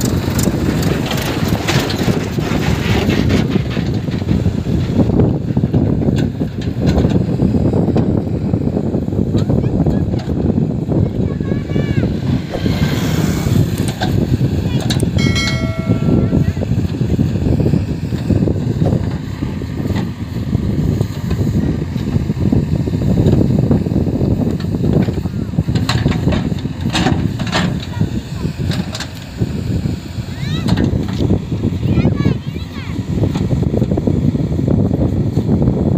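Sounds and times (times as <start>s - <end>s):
diesel engine running under load: 0.0s - 35.9s
brief high tone: 15.2s - 16.7s.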